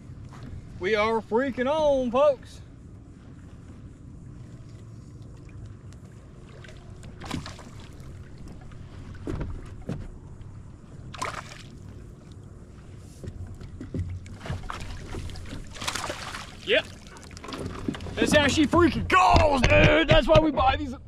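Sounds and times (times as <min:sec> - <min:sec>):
water humming against hull: 0:00.0 - 0:21.0
fish splashing: 0:06.3 - 0:08.9, 0:11.1 - 0:12.1, 0:14.3 - 0:18.2
knocks on boat: 0:09.2 - 0:10.2, 0:13.2 - 0:16.0, 0:17.4 - 0:21.0.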